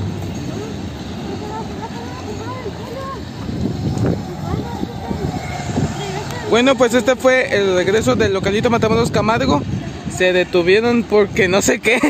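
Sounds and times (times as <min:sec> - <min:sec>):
train wheels rumbling and clattering: 0:00.0 - 0:09.8.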